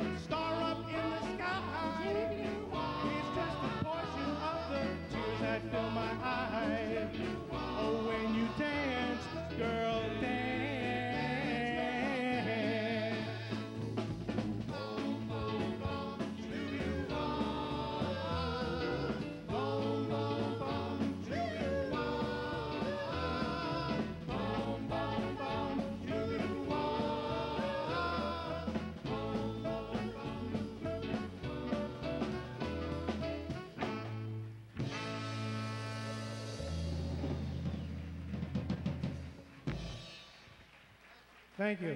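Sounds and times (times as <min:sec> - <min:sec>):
vocal group singing close harmony: 0:00.0 - 0:33.4
backing band with drum kit: 0:00.0 - 0:41.5.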